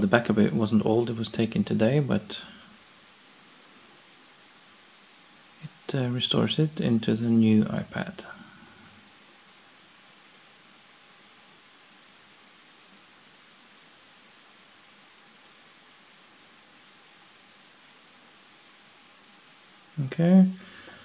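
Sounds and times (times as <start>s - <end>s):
room tone hiss: 0.0s - 21.0s.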